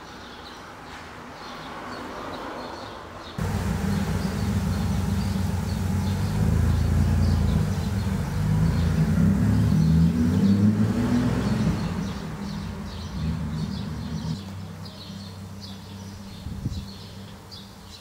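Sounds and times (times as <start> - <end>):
loud low rumble: 3.4 - 14.1.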